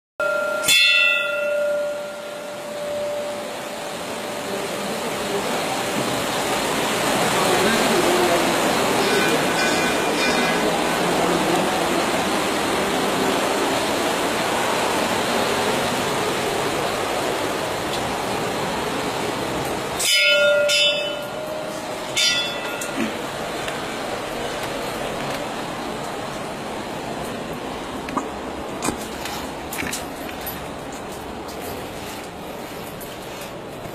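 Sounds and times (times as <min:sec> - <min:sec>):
brass bell ringing: 0:00.2 - 0:04.3, 0:09.0 - 0:10.8, 0:20.0 - 0:23.2
rushing echoing noise: 0:01.2 - 0:30.0.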